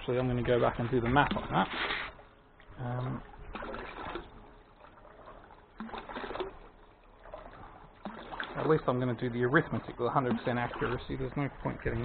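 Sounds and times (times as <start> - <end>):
water splashing into plastic tub: 0.0 - 12.0.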